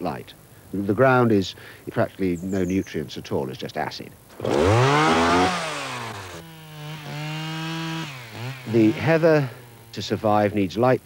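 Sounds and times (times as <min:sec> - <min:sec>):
chainsaw running: 0:04.3 - 0:10.8.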